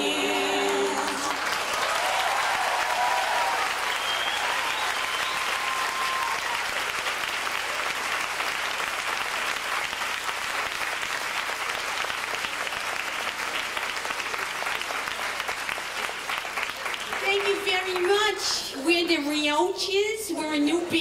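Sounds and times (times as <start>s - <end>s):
audience applauding: 0.0s - 18.9s.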